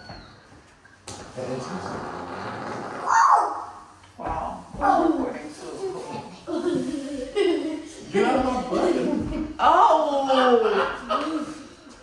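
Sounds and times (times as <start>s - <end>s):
man farting: 1.4s - 3.3s.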